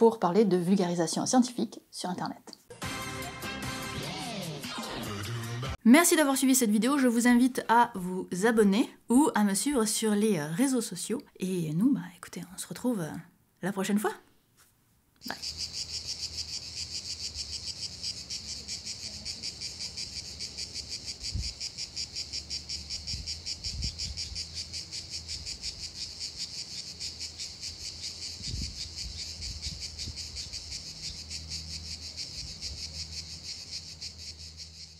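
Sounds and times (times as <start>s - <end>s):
crickets chirping: 15.2s - 34.9s.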